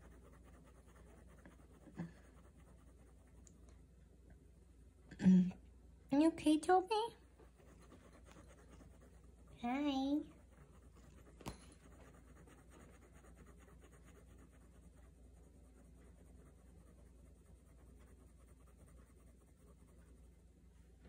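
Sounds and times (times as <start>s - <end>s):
pen scratching on paper: 0.0s - 3.4s, 7.4s - 20.4s.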